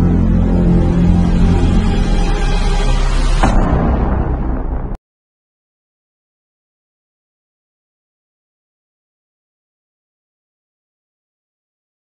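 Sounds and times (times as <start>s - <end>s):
cinematic boom impact: 0.0s - 5.0s
heavy low rumble: 0.0s - 5.0s.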